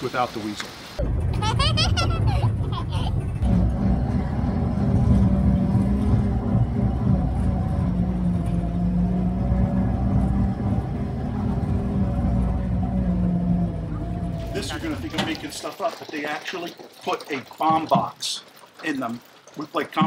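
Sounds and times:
tracked vehicle engine drone: 0:01.0 - 0:15.6.

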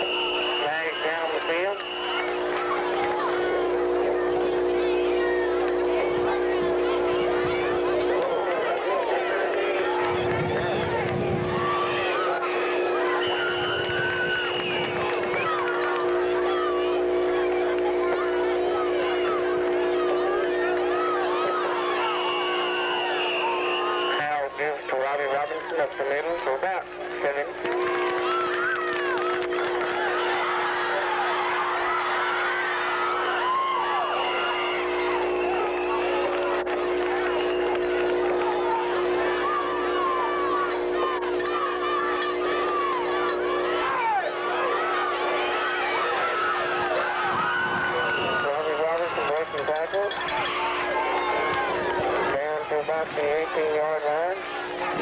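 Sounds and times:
crowd talking and shouting: 0:00.0 - 0:55.0
steady multi-tone hum: 0:00.0 - 0:55.0.

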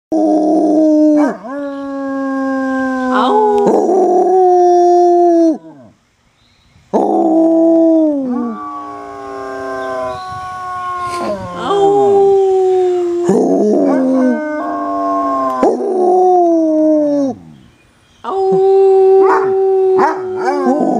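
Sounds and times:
dog howling: 0:07.0 - 0:17.4, 0:18.3 - 0:20.9.

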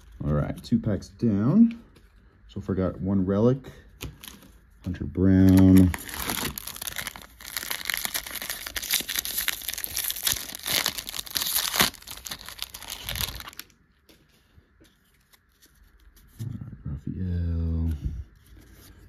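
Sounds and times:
foil wrapper tearing and crinkling: 0:05.4 - 0:13.8.

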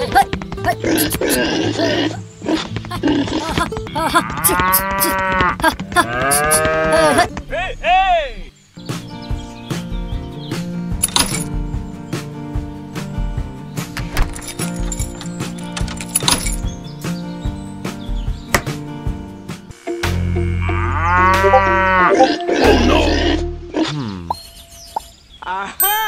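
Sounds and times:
background music: 0:00.0 - 0:24.9
cow moo sound effect: 0:19.8 - 0:24.4
cartoon sound effect: 0:20.0 - 0:24.3.

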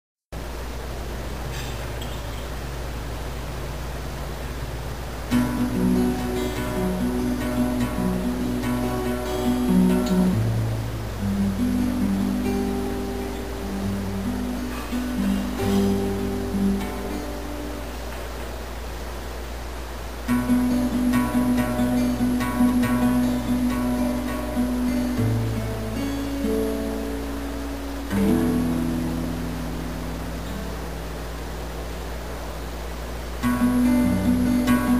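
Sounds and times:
low hum and hiss: 0:00.3 - 0:34.9
acoustic guitar picked notes: 0:00.4 - 0:34.9.

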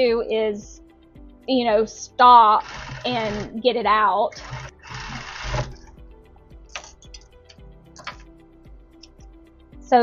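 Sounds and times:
background music: 0:00.0 - 0:10.0
sewing machine ticking: 0:02.5 - 0:03.6, 0:04.3 - 0:05.9.

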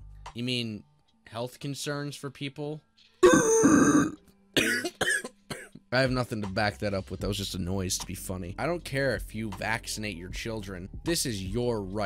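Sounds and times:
man fake coughing: 0:03.2 - 0:05.8.

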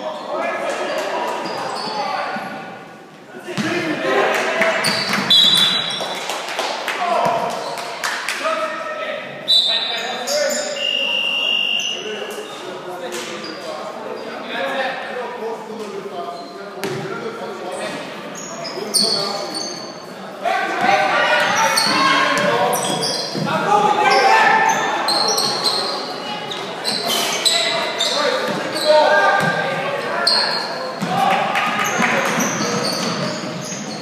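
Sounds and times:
sneakers squeaking: 0:01.3 - 0:02.7, 0:04.8 - 0:06.2, 0:09.4 - 0:12.6, 0:17.8 - 0:20.1, 0:20.7 - 0:34.0.

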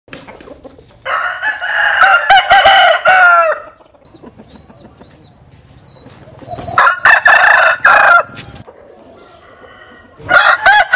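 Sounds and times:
rooster crowing: 0:01.1 - 0:03.8, 0:06.7 - 0:08.6, 0:09.4 - 0:10.9.

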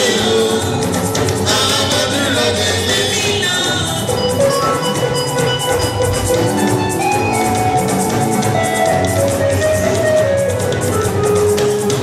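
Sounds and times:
drums: 0:00.0 - 0:12.0
keyboard tones: 0:00.0 - 0:12.0.

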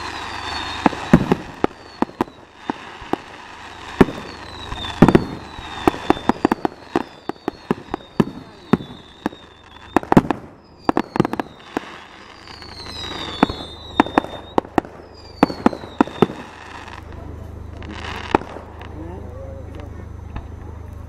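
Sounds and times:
fireworks bangs and pops: 0:00.0 - 0:19.0
high whistles of rising shells: 0:00.0 - 0:19.8.

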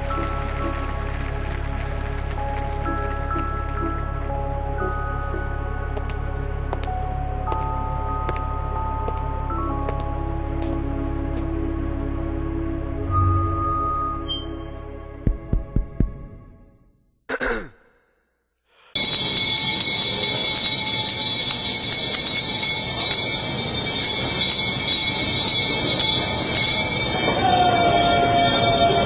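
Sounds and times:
music: 0:00.0 - 0:17.2, 0:19.0 - 0:29.0
hand bell ringing: 0:19.0 - 0:29.0.

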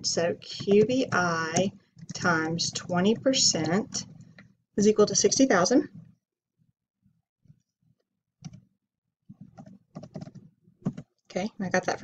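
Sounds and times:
computer keyboard keystrokes: 0:09.4 - 0:11.1.

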